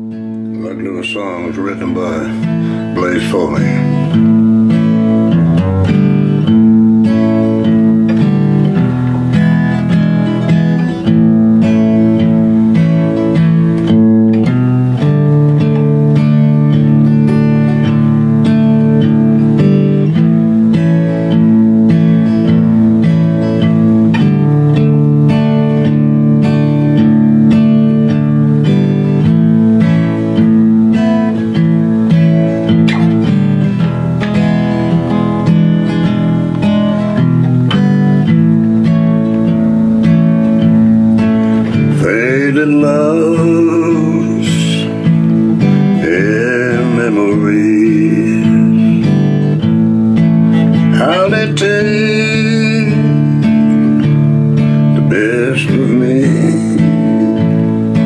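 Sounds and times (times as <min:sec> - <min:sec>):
country guitar chords: 0:00.0 - 0:58.0.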